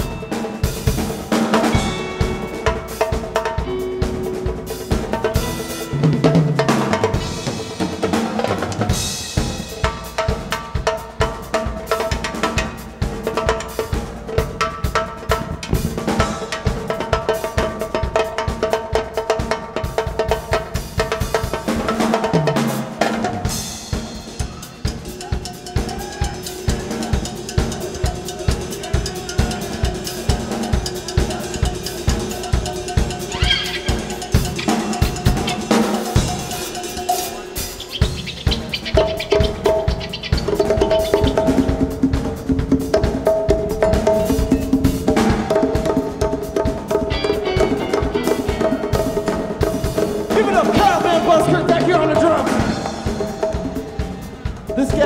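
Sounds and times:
drum kit fast beat: 0.0s - 55.0s
live rock band playing: 0.0s - 55.0s.

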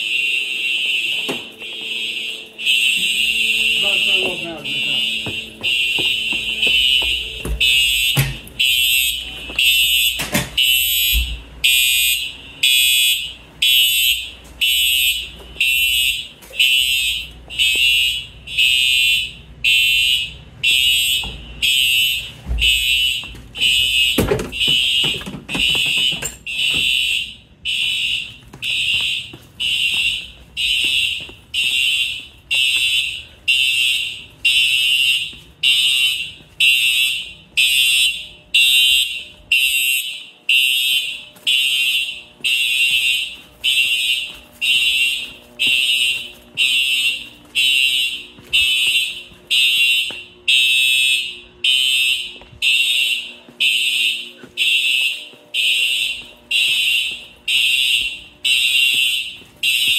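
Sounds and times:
fire alarm horns blasting: 0.0s - 59.9s.

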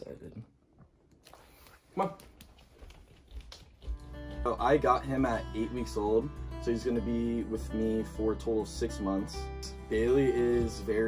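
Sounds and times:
person speaking: 4.4s - 11.0s.

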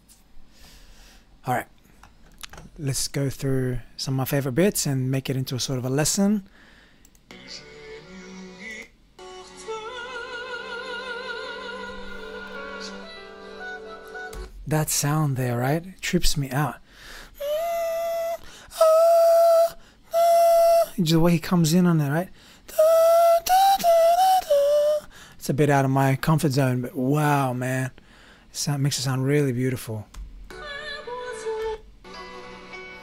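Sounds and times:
man singing high notes: 7.3s - 14.4s, 17.4s - 21.4s, 22.7s - 25.1s
man singing a held note: 17.4s - 21.3s, 22.7s - 25.1s.

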